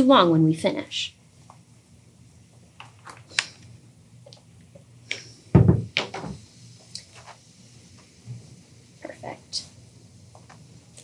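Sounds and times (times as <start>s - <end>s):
dull thump: 5.6s - 6.4s.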